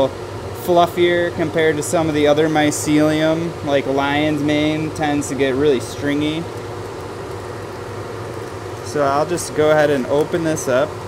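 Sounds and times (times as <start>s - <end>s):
blower hissing with low hum: 0.0s - 11.0s.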